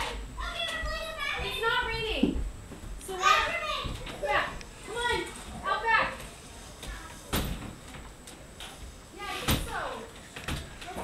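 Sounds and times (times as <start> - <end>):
children chattering and playing: 0.0 - 2.2, 3.0 - 7.3.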